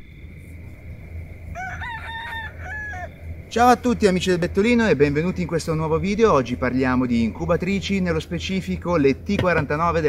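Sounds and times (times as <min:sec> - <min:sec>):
low hum: 0:00.0 - 0:10.0
rooster crowing: 0:01.5 - 0:03.4.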